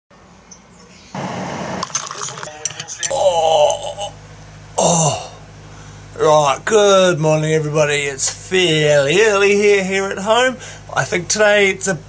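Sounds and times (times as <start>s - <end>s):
water pouring into a mug: 1.8s - 2.8s.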